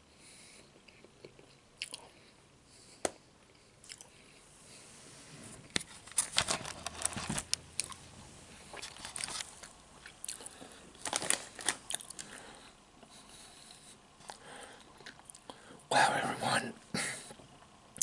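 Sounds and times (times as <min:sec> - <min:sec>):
chips crunched and chewed: 0:08.7 - 0:12.4.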